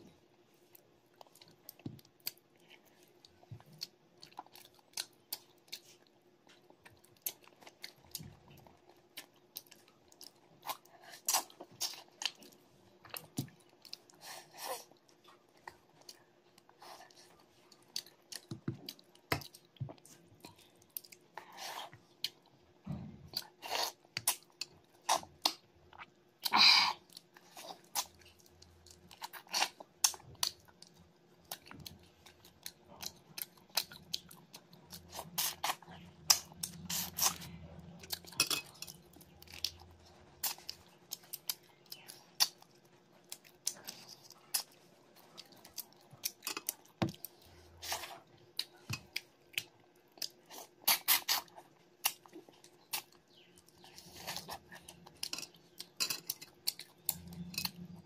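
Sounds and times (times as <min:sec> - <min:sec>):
person chewing food: 0:00.5 - 0:58.0.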